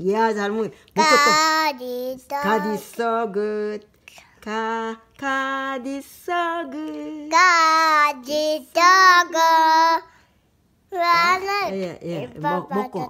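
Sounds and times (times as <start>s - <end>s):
toddler girl singing: 1.0s - 3.0s, 6.6s - 10.2s, 10.9s - 11.8s.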